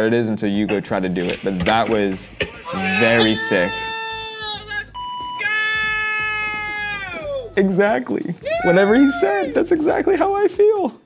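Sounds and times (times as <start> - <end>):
man shouting: 2.6 - 7.7, 8.4 - 10.1
censor bleep: 4.9 - 5.4.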